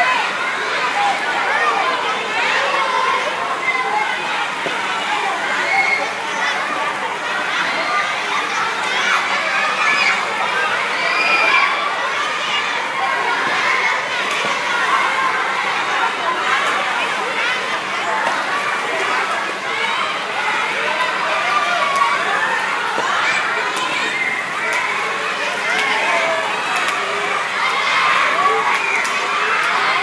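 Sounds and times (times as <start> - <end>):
children shouting: 0.0 - 30.0.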